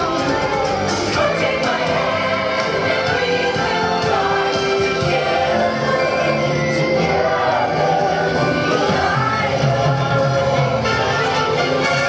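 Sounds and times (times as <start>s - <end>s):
parade music with choir singing: 0.0s - 12.0s.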